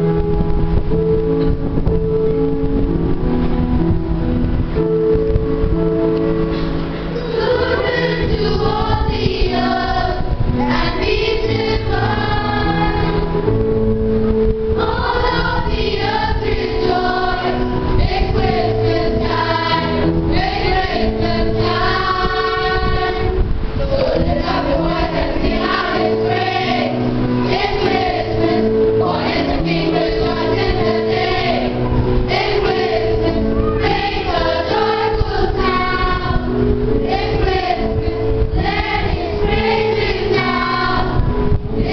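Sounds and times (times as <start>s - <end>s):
children's choir singing: 6.6s - 41.9s.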